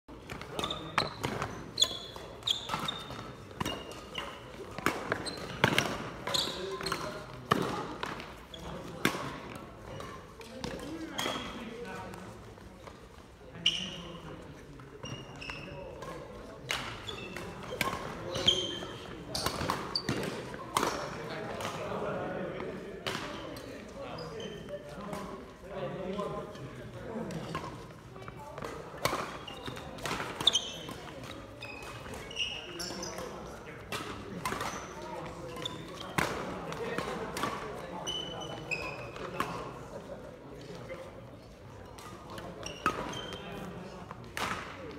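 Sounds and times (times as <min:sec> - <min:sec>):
shoes squeaking on wooden floor: 0:00.5 - 0:03.1.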